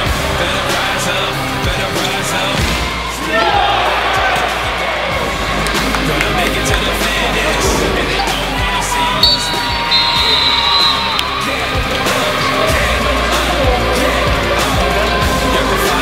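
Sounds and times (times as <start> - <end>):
crowd cheering and shouting: 0.0 - 16.0
music: 0.0 - 16.0
held high tone: 8.9 - 11.9.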